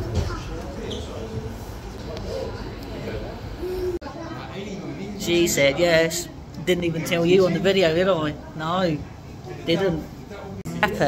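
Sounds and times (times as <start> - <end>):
soft wordless voices: 0.0 - 7.2.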